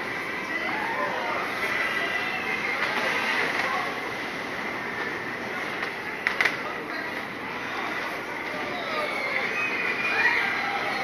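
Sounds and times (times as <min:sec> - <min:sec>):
ride mechanical rumble and whine: 0:00.0 - 0:11.0.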